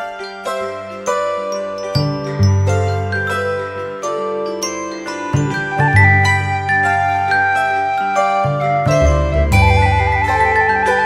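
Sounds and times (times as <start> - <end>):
cheerful instrumental music: 0.0 - 11.0.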